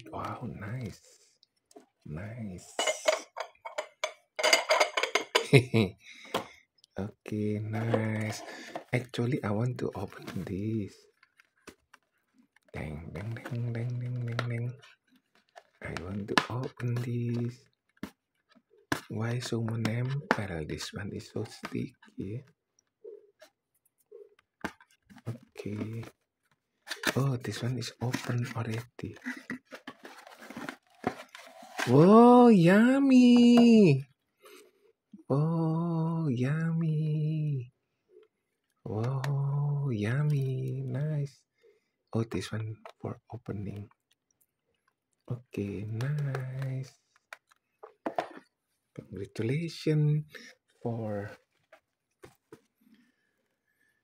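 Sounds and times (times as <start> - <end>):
glass jar clinks and taps: 2.8 - 5.6
person laughing: 5.4 - 6.0
cardboard box and paper rustling: 29.3 - 32.1.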